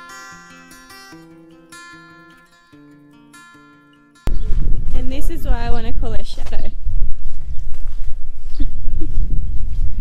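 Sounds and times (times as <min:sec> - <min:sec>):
wind buffeting microphone: 0:04.3 - 0:10.0.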